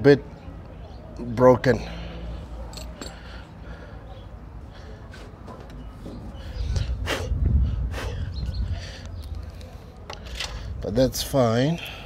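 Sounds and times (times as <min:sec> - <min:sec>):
wind rumble on microphone: 0:06.2 - 0:09.5.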